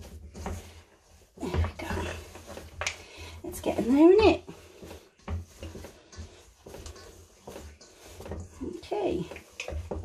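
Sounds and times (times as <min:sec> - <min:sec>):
hands squishing dough: 0:00.0 - 0:10.0.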